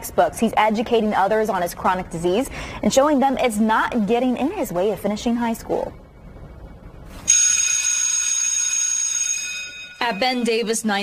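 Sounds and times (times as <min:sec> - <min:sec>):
electric school bell ringing: 0:07.3 - 0:11.0.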